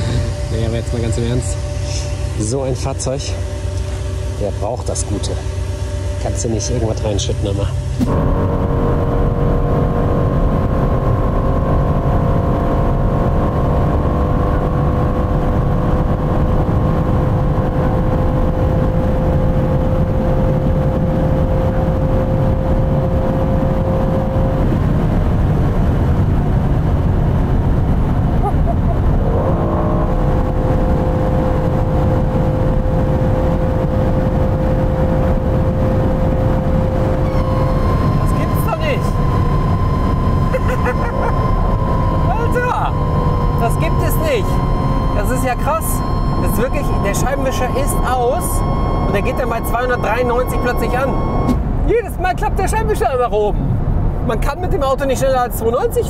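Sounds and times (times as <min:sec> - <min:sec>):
car engine drone: 0:00.0 - 0:56.0
wind and road noise: 0:00.0 - 0:56.0.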